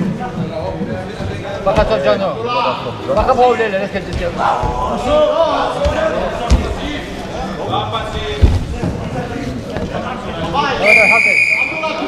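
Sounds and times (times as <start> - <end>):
wrestlers thumping on mat: 4.0 - 7.3, 8.2 - 9.2
referee's whistle: 10.8 - 12.0.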